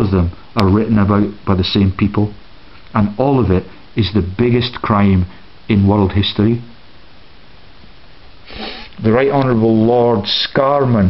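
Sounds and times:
background hiss: 0:00.0 - 0:11.0
man sniffing: 0:08.4 - 0:09.0.

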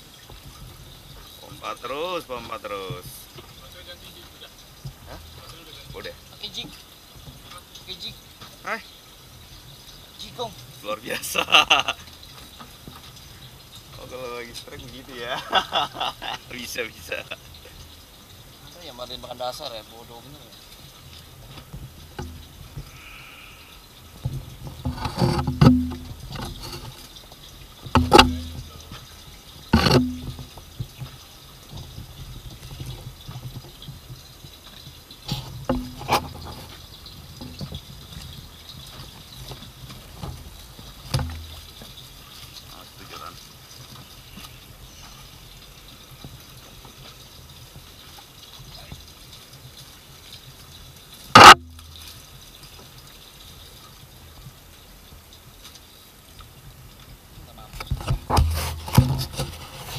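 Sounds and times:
knocks and water slaps on boat: 0:00.0 - 0:08.7, 0:21.1 - 0:22.9, 0:24.2 - 0:45.2, 0:45.8 - 0:53.0, 0:57.0 - 0:59.9
low steady hum: 0:22.0 - 0:30.8.

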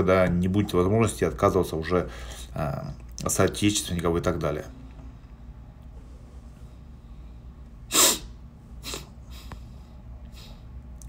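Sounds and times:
man's sharp burst of breath: 0:07.9 - 0:09.6.

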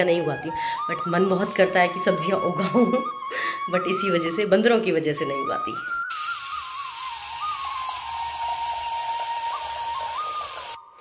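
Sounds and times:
flute music: 0:00.0 - 0:11.0.

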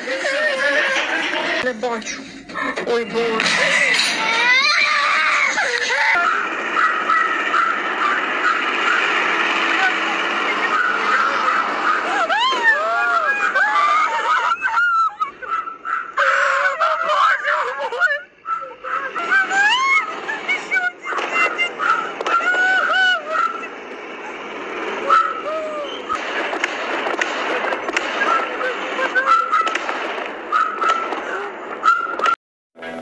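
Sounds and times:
steady background noise: 0:00.0 - 0:33.0
people shouting and screaming: 0:03.4 - 0:26.6, 0:27.4 - 0:32.4.

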